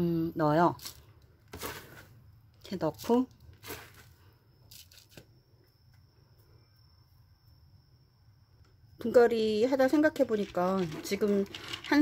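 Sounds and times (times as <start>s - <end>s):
faint high whine: 4.1s - 12.0s.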